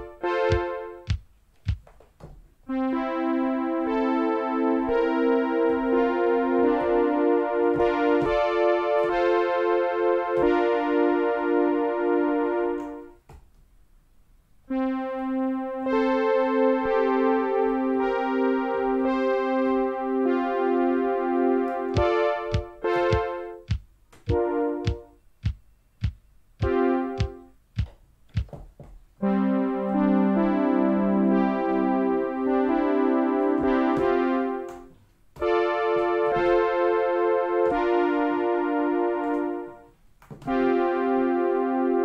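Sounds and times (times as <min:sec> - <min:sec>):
pulsing synth chords: 0:02.7 - 0:13.0, 0:14.7 - 0:25.1, 0:26.6 - 0:27.5.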